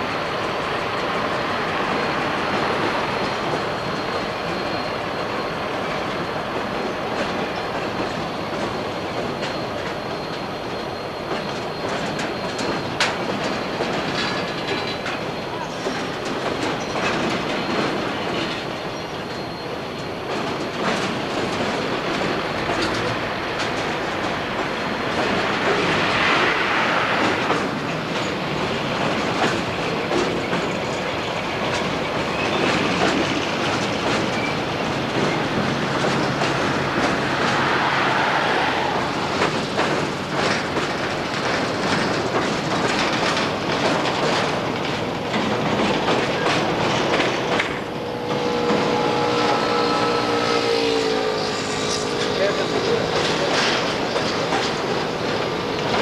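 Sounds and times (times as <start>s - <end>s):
freight train rumble: 0.0s - 56.0s
wheels clattering over rail joints: 0.2s - 56.0s.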